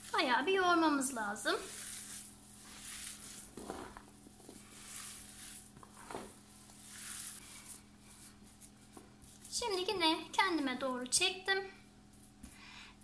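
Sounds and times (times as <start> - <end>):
hands kneading meat mixture: 0.0 - 11.0
low steady hum: 0.0 - 13.0.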